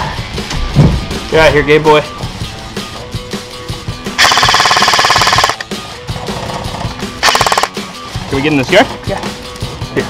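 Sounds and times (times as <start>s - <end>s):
background music: 0.0s - 10.0s
airsoft rifle firing full auto: 4.2s - 5.6s, 7.2s - 7.8s.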